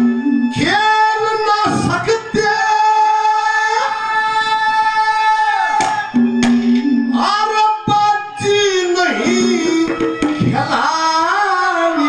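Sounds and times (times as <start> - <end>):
high sung note: 4.4 - 10.7.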